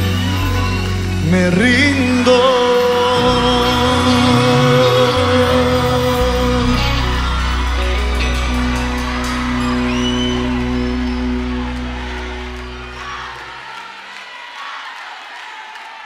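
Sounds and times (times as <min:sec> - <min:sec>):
band holding final chord: 0:00.0 - 0:13.6
audience whooping and shouting: 0:00.0 - 0:16.0.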